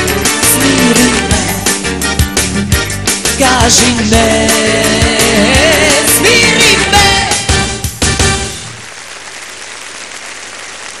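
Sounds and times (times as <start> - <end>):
audience applauding: 8.5 - 11.0.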